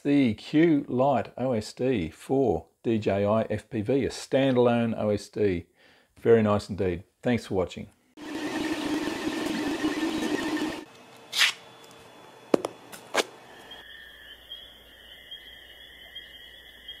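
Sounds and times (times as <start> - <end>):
printer motors humming and whining: 8.2 - 10.9.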